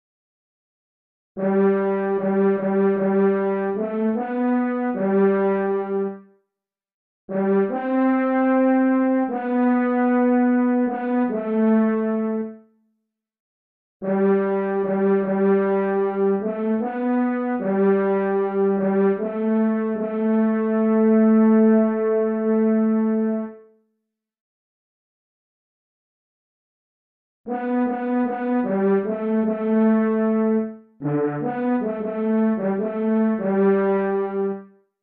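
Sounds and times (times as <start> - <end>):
synthesized french horn melody: 1.4 - 6.3, 7.3 - 12.6, 14.0 - 23.6, 27.5 - 34.7.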